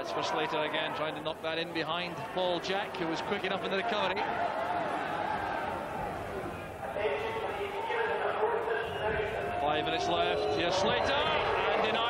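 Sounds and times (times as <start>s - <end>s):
man commentating: 0.0s - 4.2s, 6.8s - 12.0s
stadium crowd chanting: 2.1s - 12.0s.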